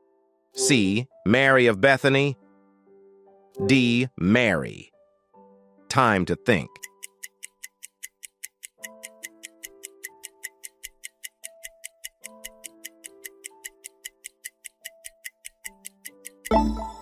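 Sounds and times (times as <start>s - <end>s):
soft background music: 0.0s - 17.0s
countdown timer ticking: 5.9s - 17.0s.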